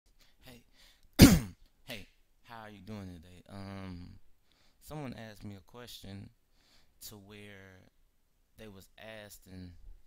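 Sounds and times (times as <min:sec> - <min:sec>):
man clearing his throat: 0:01.2 - 0:01.6.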